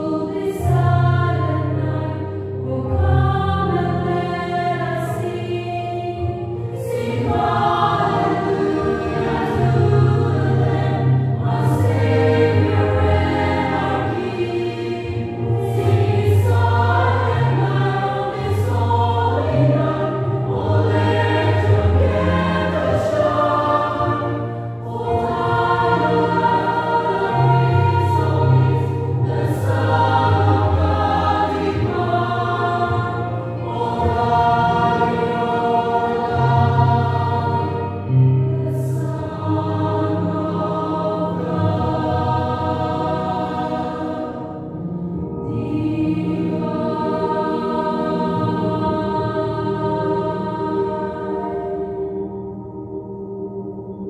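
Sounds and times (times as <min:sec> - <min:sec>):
mixed choir singing: 0:00.0 - 0:52.5.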